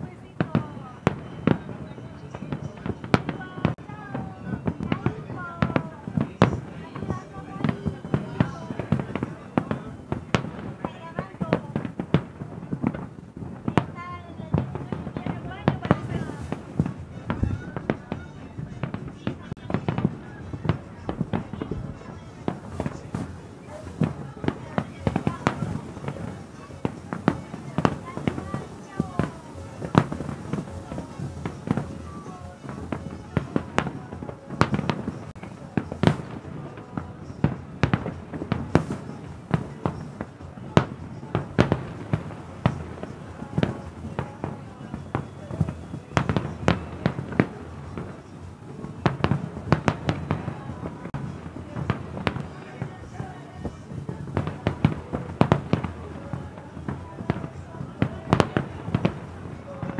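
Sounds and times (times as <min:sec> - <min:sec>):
fireworks bangs and crackles: 0:00.0 - 0:59.9.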